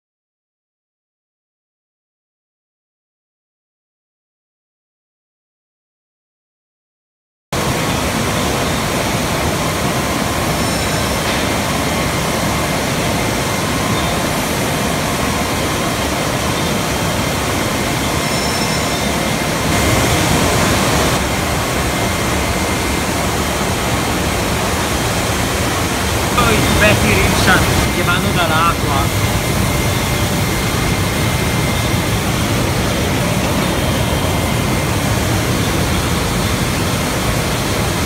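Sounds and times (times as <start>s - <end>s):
faint machine whines: 7.6s - 38.0s
machinery rushing noise: 19.1s - 38.0s.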